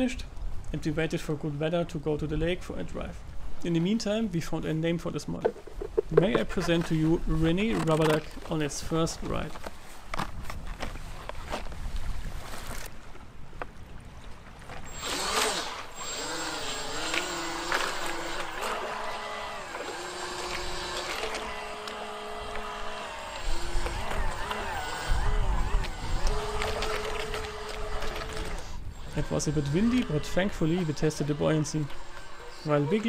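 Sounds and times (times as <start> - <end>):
electric motors whining: 14.9 - 33.0
wind buffeting microphone: 22.4 - 30.6.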